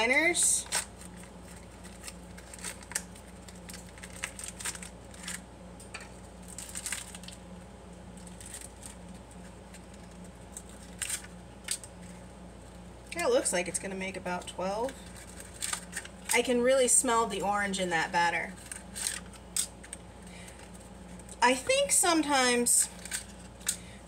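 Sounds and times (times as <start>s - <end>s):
paper liners crinkling: 0.1s - 7.4s, 8.2s - 12.2s, 14.6s - 16.5s, 18.4s - 23.8s.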